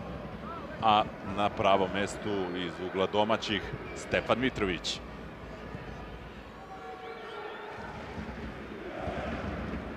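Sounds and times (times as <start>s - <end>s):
murmur of distant crowd: 0.0s - 9.9s.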